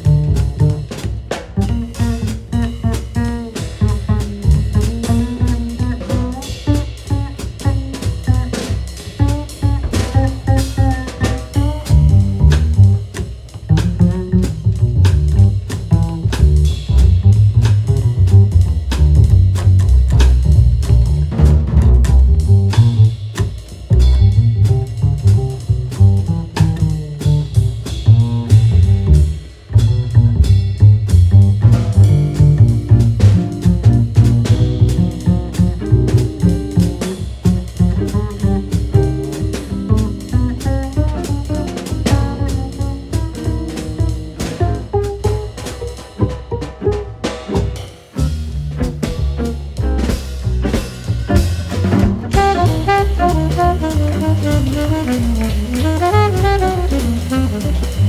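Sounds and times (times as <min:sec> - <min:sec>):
double bass low notes: 0:00.0 - 0:58.0
drum kit cymbals and drums: 0:00.0 - 0:58.0.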